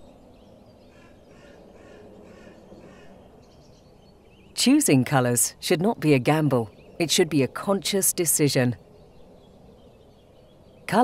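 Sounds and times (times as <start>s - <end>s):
low outdoor background: 0.0s - 11.0s.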